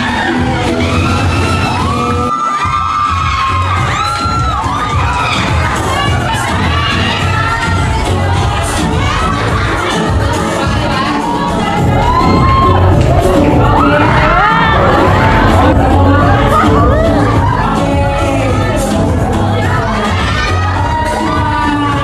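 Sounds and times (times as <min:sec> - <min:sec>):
fans screaming and cheering: 0:00.0 - 0:22.0
loud background music: 0:00.0 - 0:22.0.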